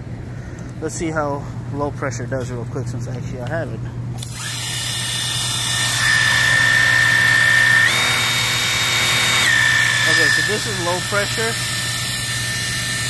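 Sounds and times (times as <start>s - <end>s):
electric pump whine: 4.1s - 13.0s.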